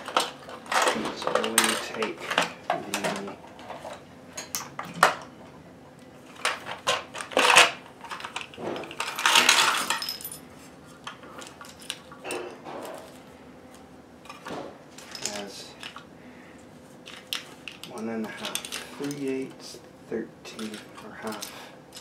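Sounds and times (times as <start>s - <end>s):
small metal parts clattering: 0.0s - 5.1s, 6.3s - 10.4s, 11.0s - 13.2s, 14.3s - 16.0s, 17.0s - 19.5s, 20.5s - 22.0s.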